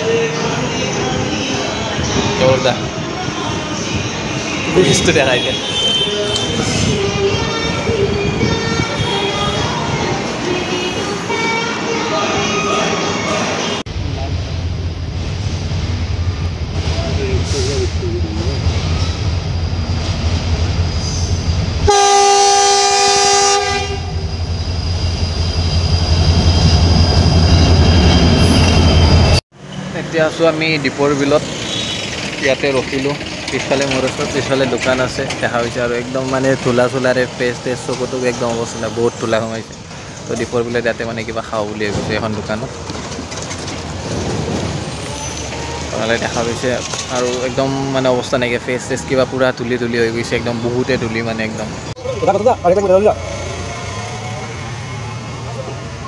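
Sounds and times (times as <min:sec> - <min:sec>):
train rumble: 0:00.0 - 0:56.0
train horn blast: 0:21.8 - 0:24.2.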